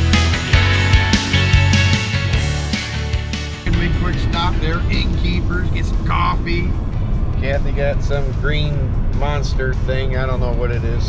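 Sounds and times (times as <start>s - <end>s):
rock music: 0.0s - 11.0s
indistinct voices: 3.7s - 11.0s
road rumble inside a car: 3.7s - 11.0s.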